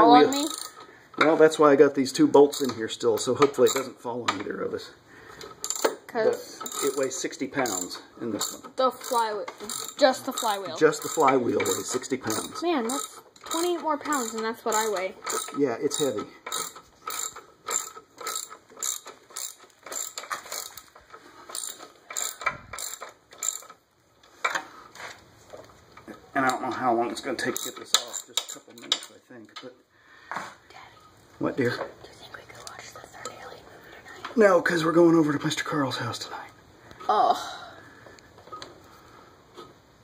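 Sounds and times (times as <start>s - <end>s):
ratchet wrench clicking: 0.3s - 0.8s, 2.5s - 4.0s, 5.5s - 6.0s, 6.6s - 23.8s, 27.4s - 29.1s.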